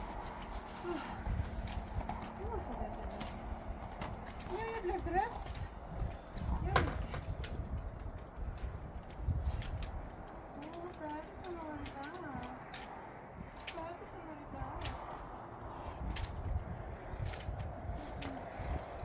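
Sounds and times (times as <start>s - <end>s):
hoofsteps on packed snow: 0.0s - 18.4s.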